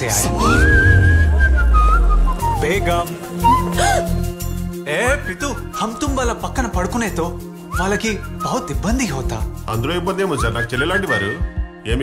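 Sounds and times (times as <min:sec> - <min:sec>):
background music with deep bass: 0:00.0 - 0:12.0
whistled melody: 0:00.2 - 0:12.0.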